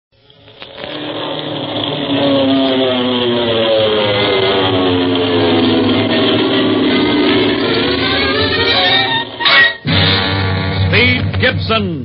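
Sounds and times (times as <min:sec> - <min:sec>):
droning aircraft engine: 0:00.2 - 0:12.0
music: 0:05.8 - 0:12.0.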